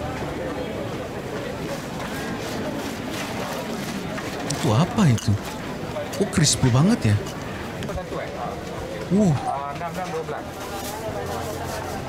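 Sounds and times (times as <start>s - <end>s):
indistinct background talking: 0.0s - 12.0s.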